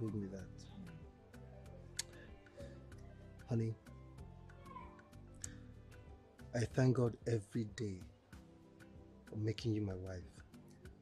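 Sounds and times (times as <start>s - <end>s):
soft background film music: 0.0s - 11.0s.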